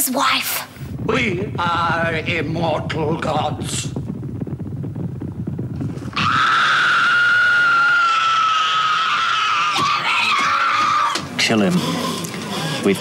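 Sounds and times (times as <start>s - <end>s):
low rumbling: 0.7s - 10.2s.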